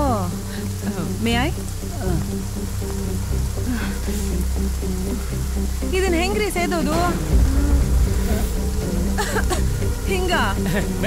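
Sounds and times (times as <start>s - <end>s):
faint rain hiss: 0.0s - 11.0s
low bass drone: 0.0s - 11.0s.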